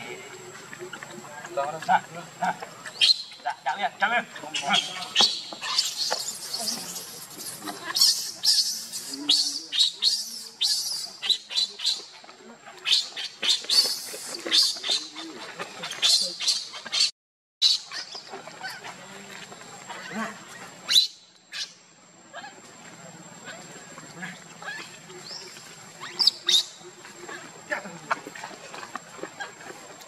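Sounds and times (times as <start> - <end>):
baby monkey shrill squeals: 4.5 - 12.0, 20.9 - 21.7.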